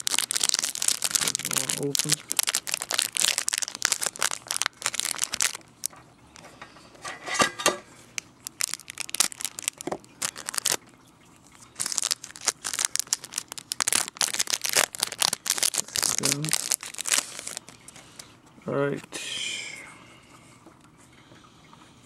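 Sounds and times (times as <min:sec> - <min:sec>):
plastic wrapping crinkling and tearing: 0:00.0 - 0:05.9, 0:08.2 - 0:11.0, 0:11.6 - 0:18.0.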